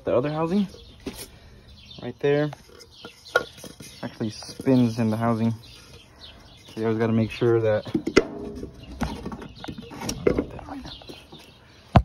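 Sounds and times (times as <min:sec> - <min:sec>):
birds chirping faintly: 0:00.0 - 0:12.0.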